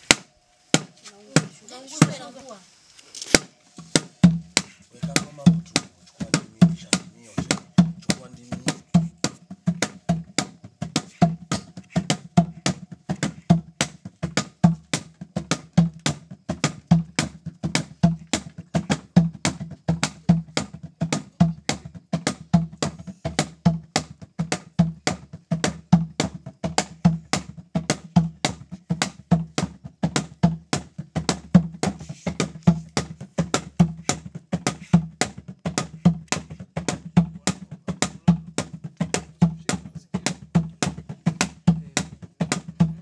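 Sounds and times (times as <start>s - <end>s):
sharp clacking strikes: 0.0s - 2.3s
low drum-like beat: 3.4s - 43.0s.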